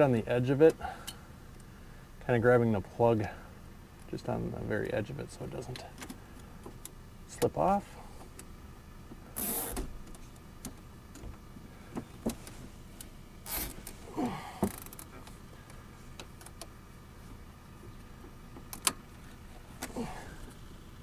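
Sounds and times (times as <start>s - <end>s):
cable tie zipping: 9.4s - 9.8s, 13.4s - 14.0s.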